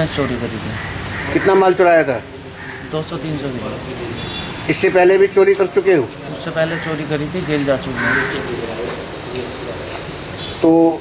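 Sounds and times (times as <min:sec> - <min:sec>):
man speaking: 0:00.0 - 0:02.3, 0:02.9 - 0:09.9, 0:10.6 - 0:11.0.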